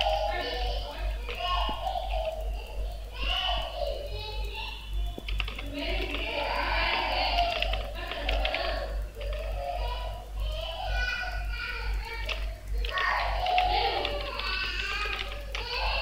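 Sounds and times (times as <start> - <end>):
keyboard typing clicks: 0.0 - 16.0
steady low hum: 0.0 - 16.0.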